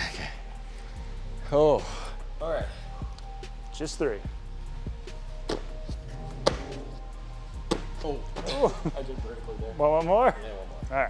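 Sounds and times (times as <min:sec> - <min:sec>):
background music with bass: 0:00.0 - 0:11.0
feet thudding on foam box and floor: 0:07.6 - 0:08.0.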